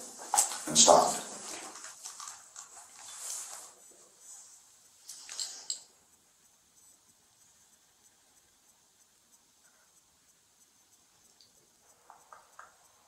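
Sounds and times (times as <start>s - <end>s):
clothing rustling: 0.0s - 5.8s.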